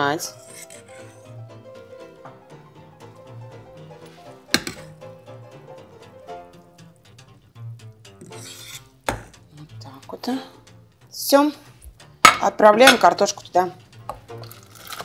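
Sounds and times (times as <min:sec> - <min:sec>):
background music with held notes: 0:00.0 - 0:15.0.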